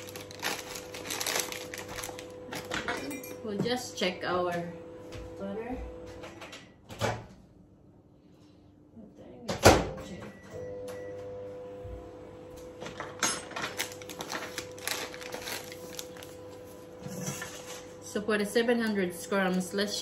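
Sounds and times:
packets rustling: 0.0s - 2.8s, 13.6s - 16.7s
microwave oven humming: 0.0s - 20.0s.

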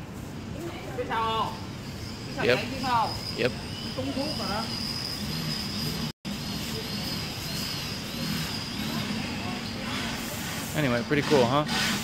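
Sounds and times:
high-pitched whine: 1.0s - 10.4s.

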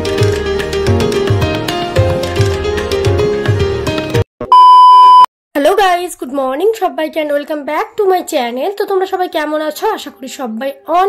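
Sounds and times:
loud electronic beep: 4.5s - 5.3s
woman speaking: 5.6s - 11.0s.

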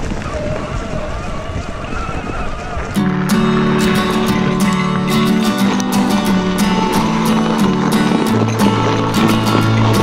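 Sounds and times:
tyres rolling over dirt: 0.0s - 10.0s
wind rushing over microphone: 0.0s - 10.0s.

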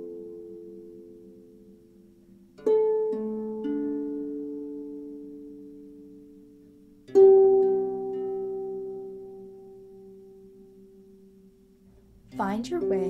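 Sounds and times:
harp music: 0.0s - 13.0s.

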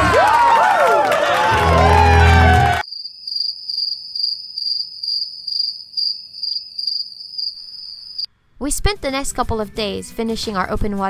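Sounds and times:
music: 1.5s - 2.8s, 8.5s - 11.0s
cricket trilling: 2.8s - 8.3s.

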